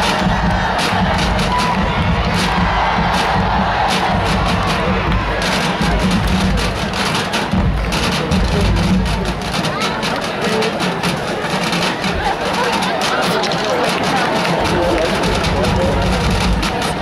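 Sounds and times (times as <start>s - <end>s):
marching band music: 0.0s - 17.0s
stadium crowd cheering: 0.0s - 17.0s.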